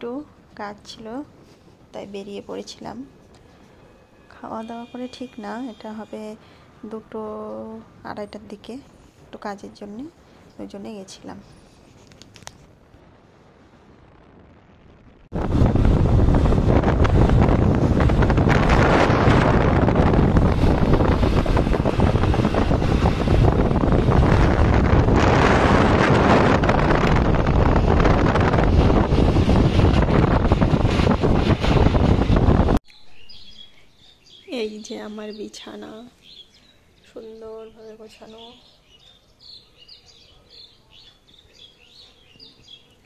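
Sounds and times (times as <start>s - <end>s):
wind buffeting microphone: 12.3s - 33.6s.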